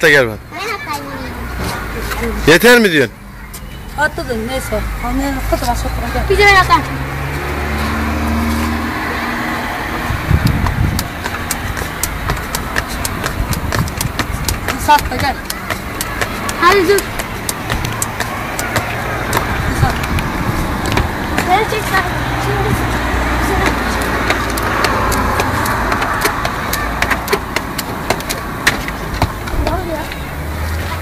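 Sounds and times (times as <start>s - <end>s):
street noise: 0.0s - 31.0s
vehicle engine running: 7.7s - 31.0s.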